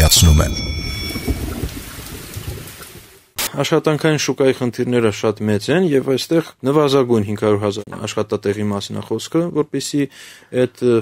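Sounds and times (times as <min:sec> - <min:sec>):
high ringing tones: 0:00.0 - 0:02.5.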